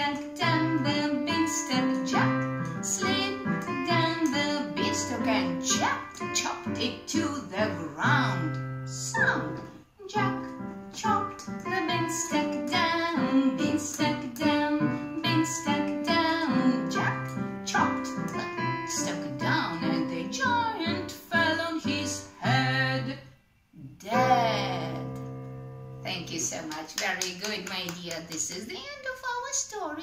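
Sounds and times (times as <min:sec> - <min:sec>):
digital piano: 0:00.0 - 0:22.6, 0:24.2 - 0:26.8
woman singing: 0:00.0 - 0:23.3, 0:24.0 - 0:25.1.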